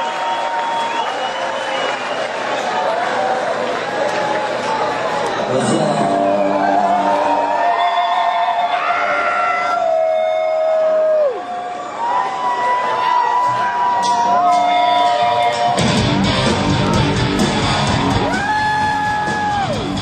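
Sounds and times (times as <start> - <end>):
crowd cheering: 0.0 - 20.0
electric guitar long wavering notes: 5.5 - 8.7.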